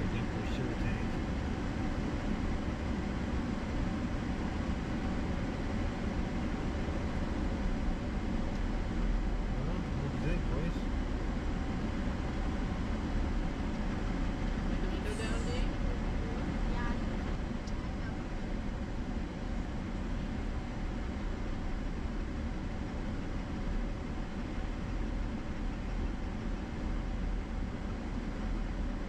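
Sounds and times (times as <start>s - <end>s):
pickup engine rumble: 0.0s - 29.0s.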